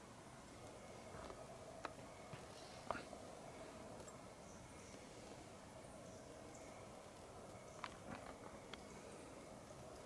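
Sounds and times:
faint hiss: 0.0 - 10.0
steady low hum: 0.0 - 10.0.

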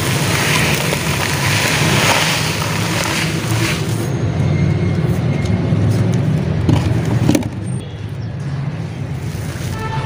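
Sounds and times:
dirt crumbling into metal basin: 0.0 - 4.1.

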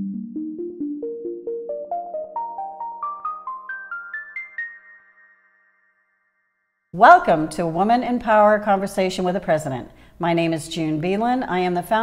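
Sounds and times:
rising ringing notes theme music: 0.0 - 6.6.

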